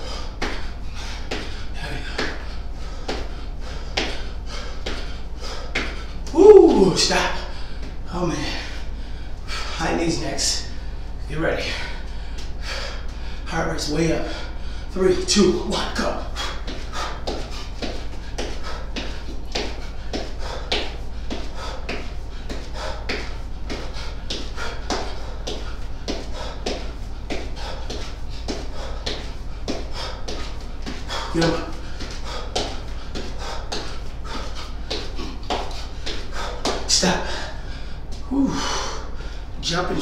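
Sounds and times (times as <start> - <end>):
quick footfalls on exercise mat: 0.0 - 8.7, 14.1 - 40.0
hard breathing: 0.0 - 40.0
steady low hum: 0.0 - 40.0.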